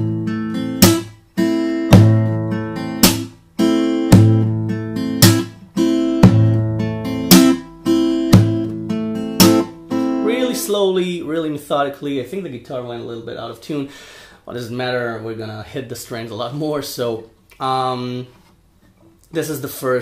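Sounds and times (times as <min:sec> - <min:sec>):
acoustic guitar fingerstyle: 0:00.0 - 0:11.2
slaps on guitar strings: 0:00.8 - 0:01.2, 0:01.9 - 0:02.3, 0:03.0 - 0:03.4, 0:05.2 - 0:05.6, 0:06.2 - 0:06.6, 0:07.3 - 0:07.7, 0:08.3 - 0:08.8, 0:09.4 - 0:09.8.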